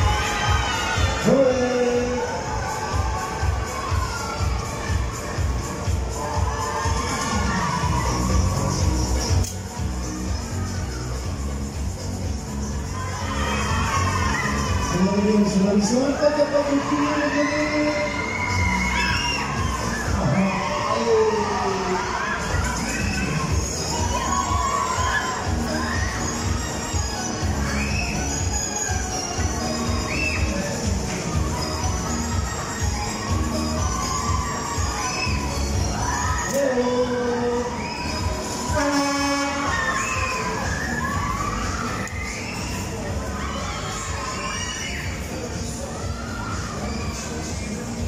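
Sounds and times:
ride music bass beat: 0.0 - 16.9
riders screaming and shouting: 0.0 - 48.0
horn-like tone: 38.7 - 40.0.

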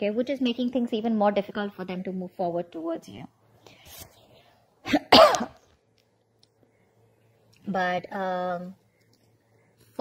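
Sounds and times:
woman coughing: 4.8 - 5.6.

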